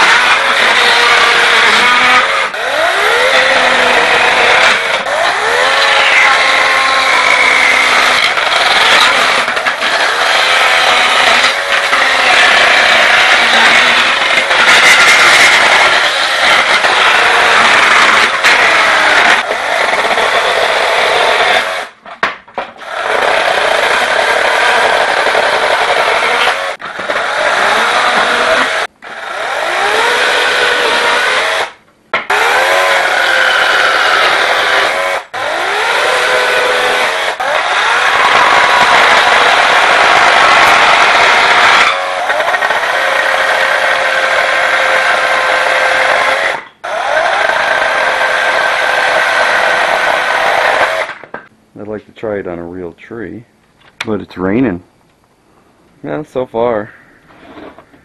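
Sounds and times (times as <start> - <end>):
chainsaw cutting wood: 0.0 - 22.0, 22.8 - 51.4.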